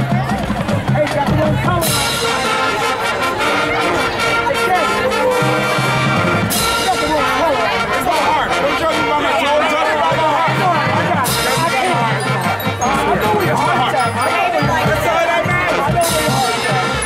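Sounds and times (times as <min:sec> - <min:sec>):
marching percussion: 0:00.0 - 0:17.0
brass holding chords: 0:01.7 - 0:17.0.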